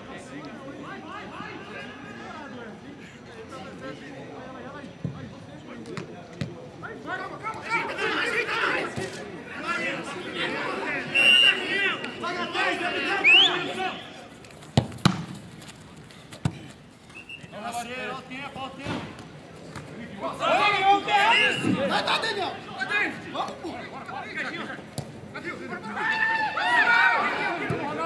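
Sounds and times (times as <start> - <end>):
players shouting: 6.9 - 14.3, 19.9 - 28.0
football being kicked: 14.7 - 15.5.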